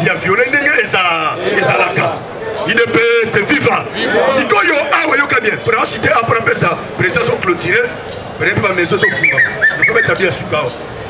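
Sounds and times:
man speaking through loudspeaker: 0.0s - 10.8s.

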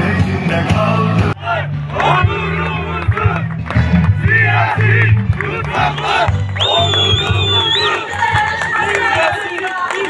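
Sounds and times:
crowd shouting: 1.4s - 10.0s.

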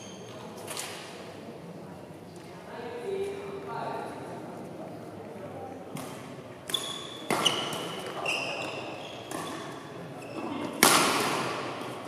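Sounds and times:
shoes squeaking on court: 6.7s - 10.7s
racket striking shuttlecock: 10.8s - 11.8s.

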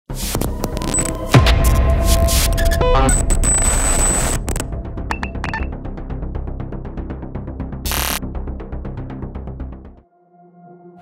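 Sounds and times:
digital static bursts: 0.2s - 5.7s, 7.9s - 8.2s
electronic tones: 2.1s - 5.7s, 7.9s - 8.2s.

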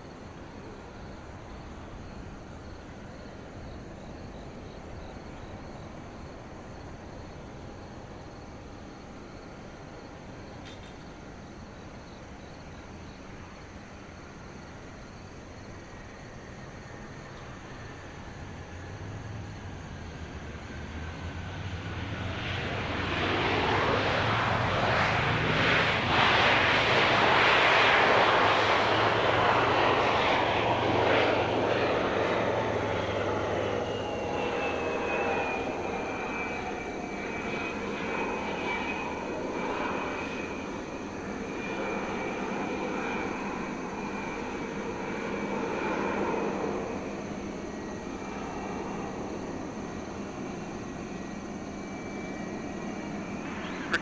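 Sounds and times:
jet engine roar: 0.0s - 54.0s
jet engine whine spooling down: 0.0s - 54.0s.

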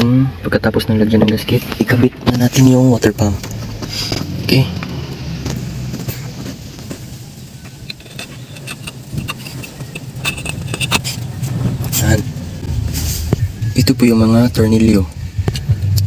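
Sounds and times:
steady low rumble: 0.0s - 16.0s
metal clinks and taps: 7.8s - 11.3s.

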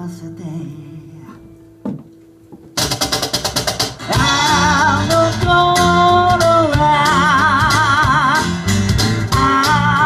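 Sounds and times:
man singing with vibrato: 0.0s - 1.5s, 4.0s - 10.0s
electric bass: 0.0s - 10.0s
percussion: 2.7s - 10.0s.

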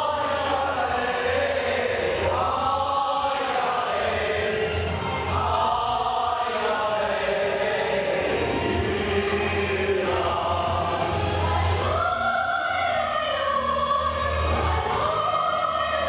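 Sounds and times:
mixed choir singing: 0.0s - 16.0s.

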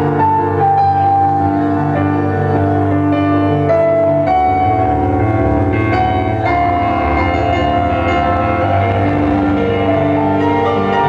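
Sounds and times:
keyboard chords: 0.0s - 11.0s
steady low bass tone: 0.0s - 11.0s.

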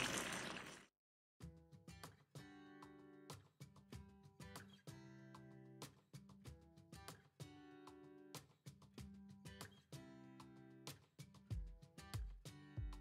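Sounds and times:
pan bubbling: 0.0s - 0.8s.

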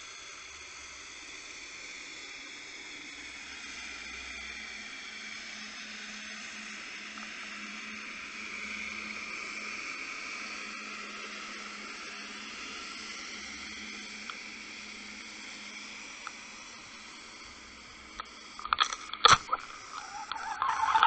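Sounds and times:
faint steady hum: 0.0s - 21.0s
underwater hiss: 0.0s - 21.0s.

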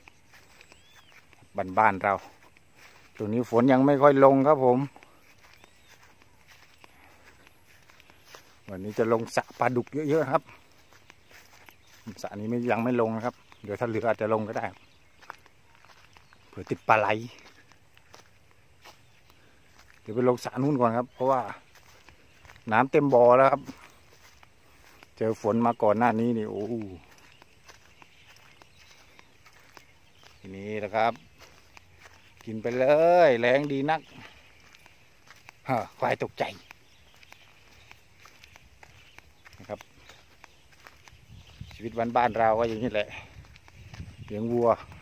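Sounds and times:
soft footsteps on dry grass: 0.0s - 45.0s
man speaking: 1.4s - 2.4s, 3.1s - 5.1s, 8.7s - 10.6s, 11.9s - 14.8s, 16.5s - 17.6s, 20.0s - 21.7s, 22.6s - 23.8s, 25.2s - 27.2s, 30.4s - 31.2s, 32.3s - 34.3s, 35.6s - 36.7s, 41.7s - 43.4s, 44.3s - 45.0s.

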